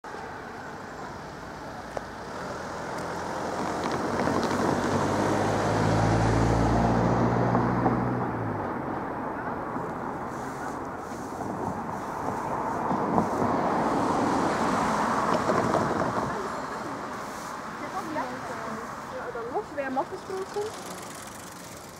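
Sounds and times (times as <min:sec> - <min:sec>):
car driving past: 0:01.4 - 0:21.9.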